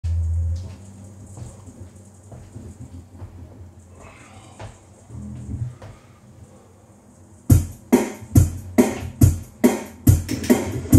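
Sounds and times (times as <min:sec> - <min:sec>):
amplifier hum: 0:00.0 - 0:10.9.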